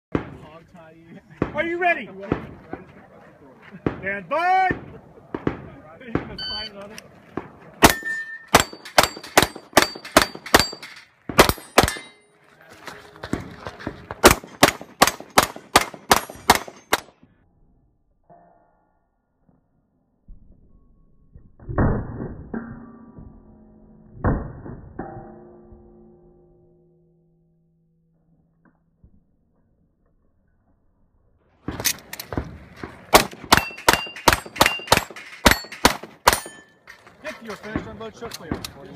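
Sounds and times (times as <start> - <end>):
pistol shots: 7.8 - 12.2, 14.2 - 17.1, 33.1 - 36.6
steel plate targets ringing: 7.8 - 12.4, 33.4 - 37.0
steel plate ringing ding: 36.4 - 36.8.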